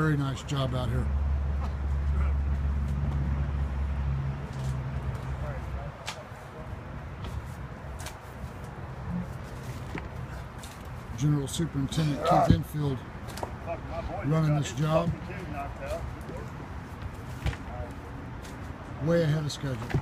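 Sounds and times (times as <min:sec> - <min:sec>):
engine humming: 0:00.0 - 0:20.0.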